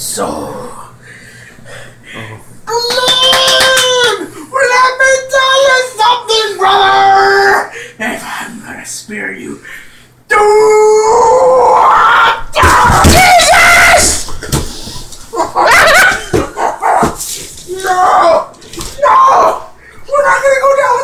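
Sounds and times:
man howling and yelling: 0:02.7 - 0:07.8, 0:10.3 - 0:14.3, 0:15.4 - 0:21.0.

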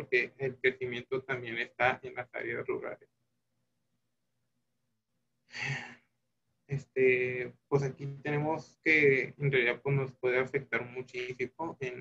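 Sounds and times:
person sighing: 0:05.5 - 0:06.0.

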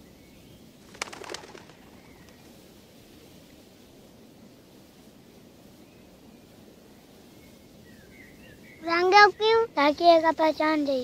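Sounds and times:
bird wings flapping: 0:00.8 - 0:02.7.

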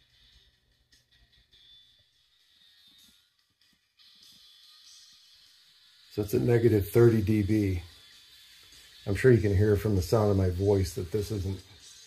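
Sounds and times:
very faint music from speaker: 0:00.0 - 0:12.0.

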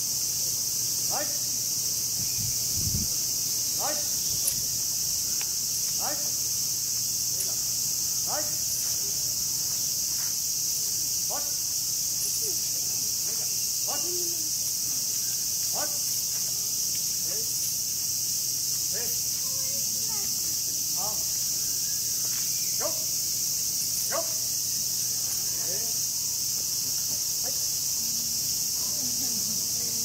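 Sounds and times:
cicadas droning: 0:00.0 - 0:30.0.

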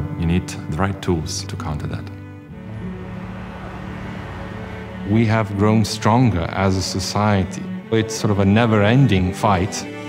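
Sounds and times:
music with sustained low notes: 0:00.0 - 0:10.0
street and traffic noise: 0:02.5 - 0:05.6.

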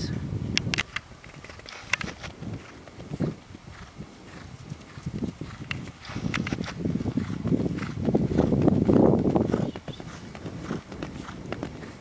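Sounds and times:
hoofbeats on dirt: 0:00.8 - 0:12.0.

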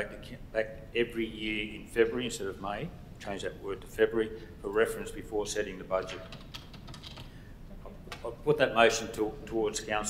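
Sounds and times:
keyboard typing: 0:06.2 - 0:07.3.

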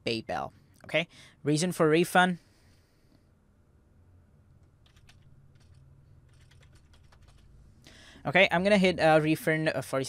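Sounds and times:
faint keyboard typing: 0:04.6 - 0:07.6.

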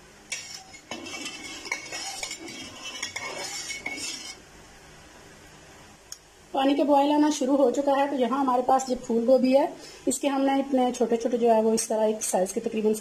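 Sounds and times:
metal skimmer scraping metal pan: 0:00.3 - 0:04.4.

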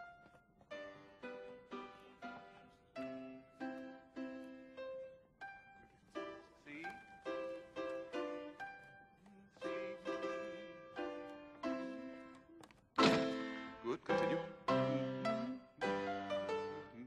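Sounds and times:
keyboard playing a slow march: 0:13.0 - 0:17.0.

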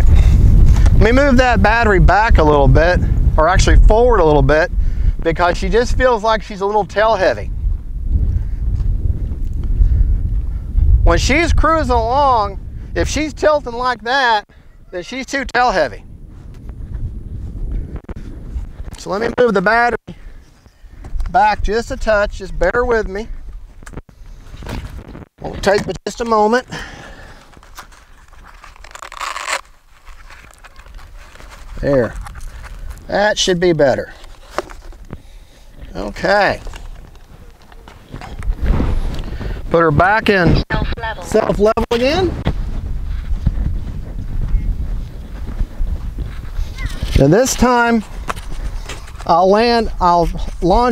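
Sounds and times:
wind buffeting microphone: 0:00.0 - 0:25.7, 0:30.7 - 0:50.9
battery scraping into bay: 0:34.1 - 0:35.2.

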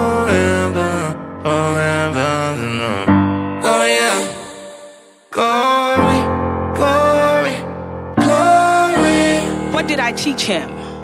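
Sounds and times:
voices singing chant-like chords: 0:00.0 - 0:09.9.

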